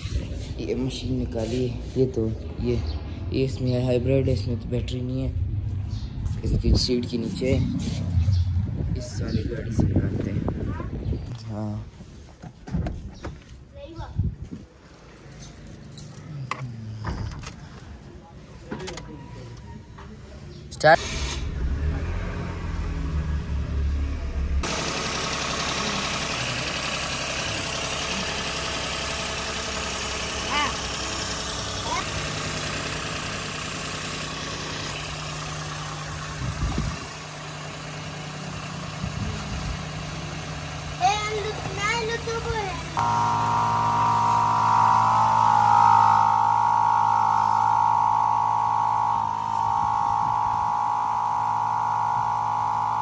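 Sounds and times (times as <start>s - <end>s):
rumble: 4.1s - 11.2s, 21.2s - 24.6s
car keys jangling: 15.0s - 18.0s
motor humming: 24.6s - 53.0s.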